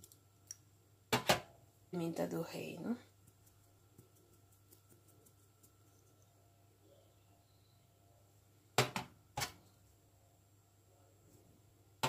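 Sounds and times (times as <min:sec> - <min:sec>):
pepper shaker shaking: 0:03.1 - 0:06.3.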